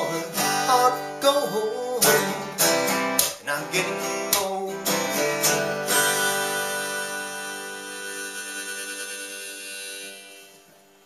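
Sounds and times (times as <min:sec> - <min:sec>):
acoustic guitar chord: 0:00.0 - 0:11.0
harmonica: 0:03.6 - 0:11.0.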